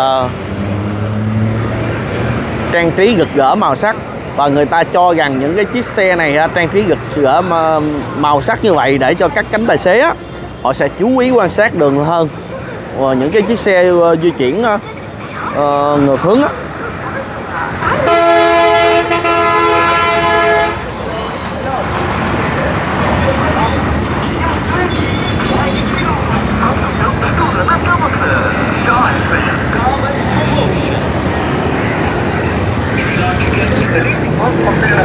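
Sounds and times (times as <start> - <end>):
street traffic: 0.0 - 35.0
bus horn blast: 18.0 - 21.0, 27.4 - 27.8.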